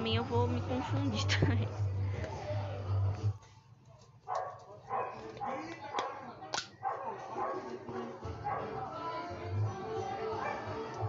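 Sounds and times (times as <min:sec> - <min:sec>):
music: 0:00.0 - 0:05.8, 0:06.6 - 0:11.0
dog barking: 0:04.2 - 0:08.9, 0:10.4 - 0:11.0.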